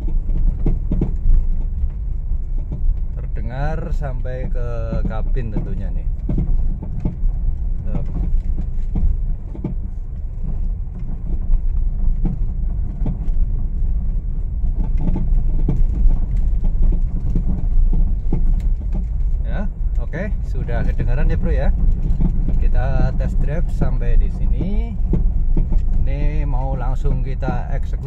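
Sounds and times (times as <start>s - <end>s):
low road rumble: 0.0s - 28.0s
suspension clunking knocks: 0.0s - 28.0s.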